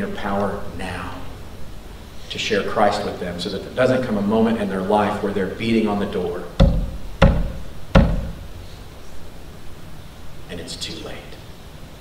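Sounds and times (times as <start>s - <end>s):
fist knocking on wood: 6.6s - 8.5s.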